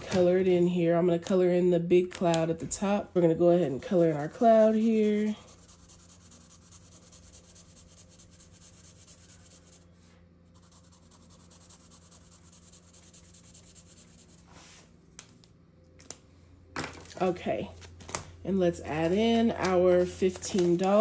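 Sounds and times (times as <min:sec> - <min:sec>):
low steady hum: 0:00.0 - 0:21.0
marker rubbing on paper: 0:03.9 - 0:14.6.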